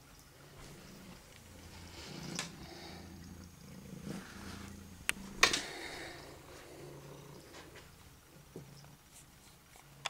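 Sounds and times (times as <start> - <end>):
cat purring: 0.3 - 9.1.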